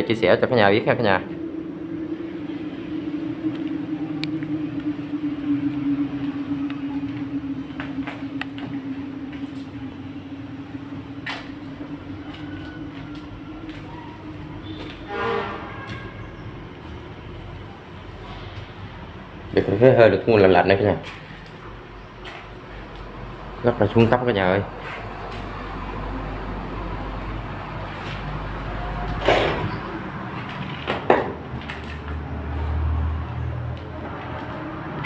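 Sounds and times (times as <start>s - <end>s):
low drone: 0.0s - 35.0s.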